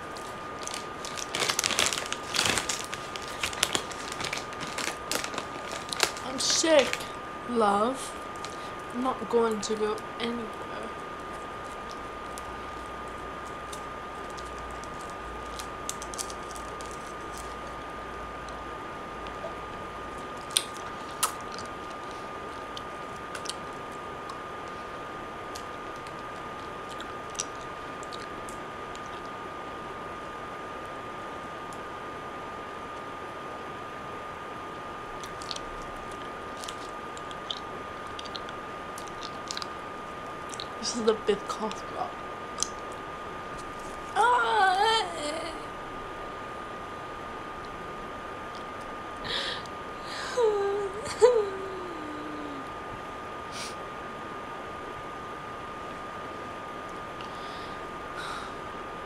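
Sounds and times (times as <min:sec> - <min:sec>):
thin constant whine: 0:00.0 - 0:59.0.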